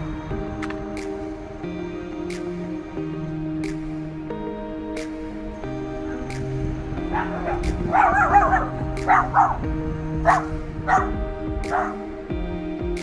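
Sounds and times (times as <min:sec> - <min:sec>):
dog barking: 0:07.1 - 0:09.6, 0:10.2 - 0:12.0.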